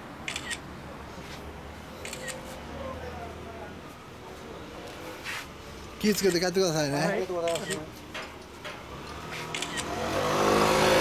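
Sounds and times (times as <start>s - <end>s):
camera shutter clicking: 0.3s - 0.6s, 2.0s - 2.4s, 7.4s - 7.9s, 9.5s - 9.9s.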